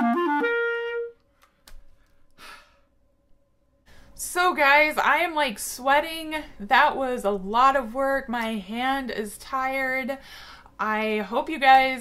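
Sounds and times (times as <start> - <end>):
quick breath in: 1.4 - 2.9.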